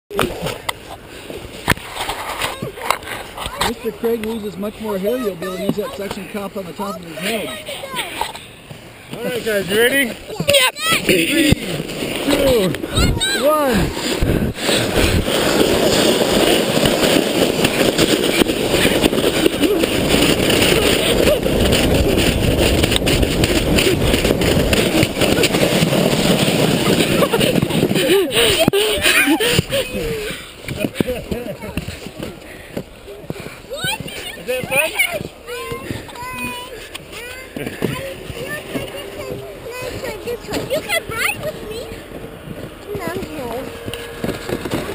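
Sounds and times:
sleds scraping over snow: 0:00.1 - 0:44.9
wind on microphone: 0:11.6 - 0:31.2
child's high voice: 0:12.9 - 0:13.5, 0:35.2 - 0:42.0.

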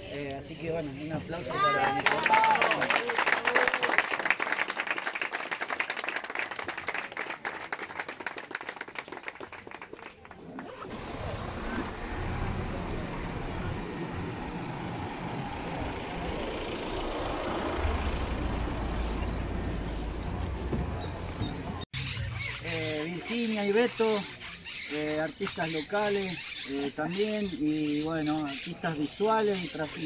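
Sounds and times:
crowd applauding: 0:01.6 - 0:10.7.

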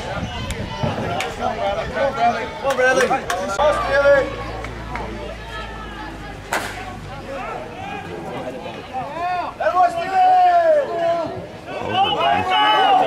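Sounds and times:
voices shouting: 0:00.0 - 0:13.0
bat hitting ball crack: 0:06.5 - 0:06.9.

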